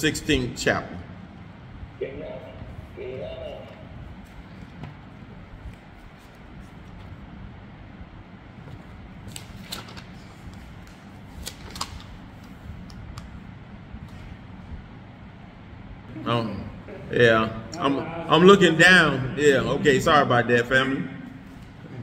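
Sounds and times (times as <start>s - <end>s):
low hum: 0.0s - 9.6s.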